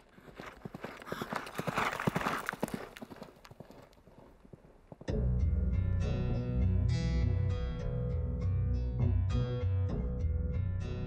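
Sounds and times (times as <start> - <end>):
hoofbeats of running horses: 0.0 - 5.1.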